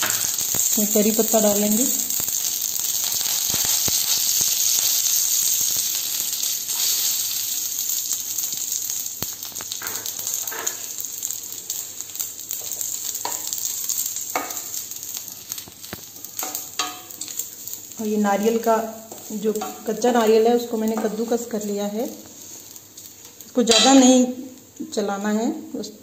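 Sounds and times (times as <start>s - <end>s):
hot oil sizzling: 0.0s - 26.0s.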